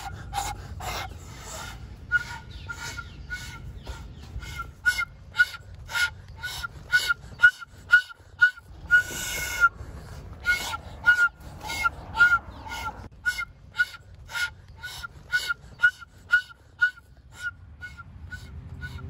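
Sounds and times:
wooden flute honking notes: 0.0s - 9.8s, 10.4s - 19.0s.

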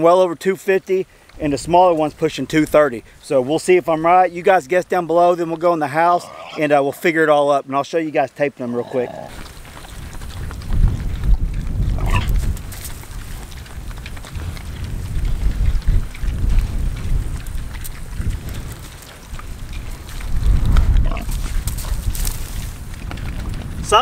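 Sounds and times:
wind buffeting microphone: 1.3s - 5.0s, 9.3s - 24.0s
pigs grunting and eating: 5.1s - 7.2s, 8.6s - 24.0s.

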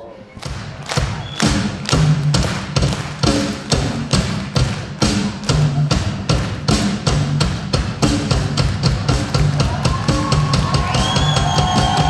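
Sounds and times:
drum kit playing rock beat: 0.4s - 12.0s.

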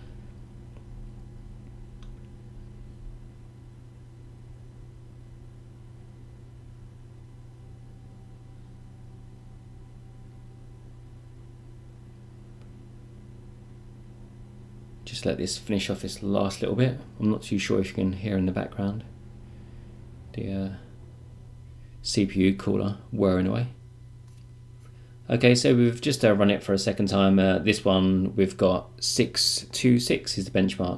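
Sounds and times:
computer cooler fan whirring: 0.0s - 30.9s.

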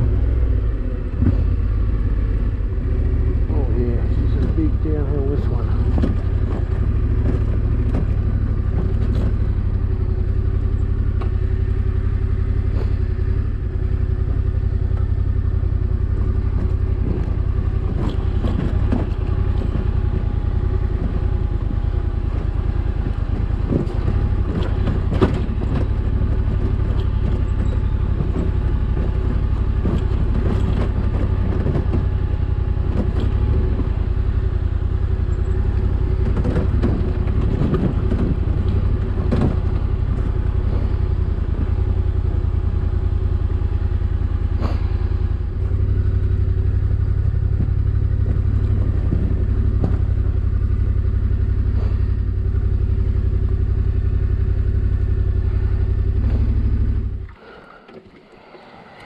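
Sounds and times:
motorcycle engine at low revs: 0.0s - 59.0s.

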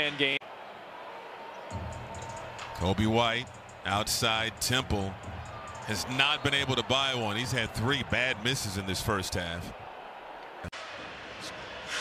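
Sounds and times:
basketball arena background noise: 0.0s - 12.0s.

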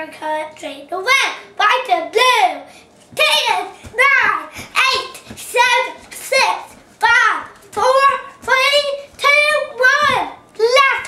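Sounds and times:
girl singing high notes: 1.1s - 11.0s.

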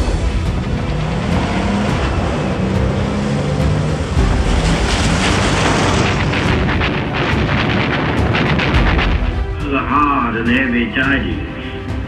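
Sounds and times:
low rumble: 0.0s - 10.5s
held low notes: 0.0s - 12.0s.

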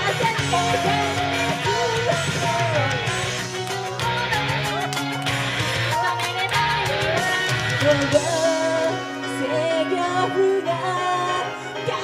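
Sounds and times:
woman singing: 0.0s - 5.0s, 5.9s - 12.0s
backing band track: 0.0s - 12.0s.

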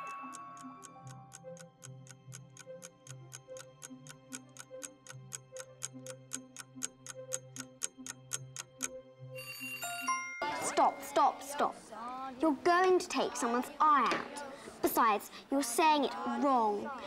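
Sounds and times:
clock ticking: 0.0s - 9.0s
soft background music: 0.0s - 17.0s.

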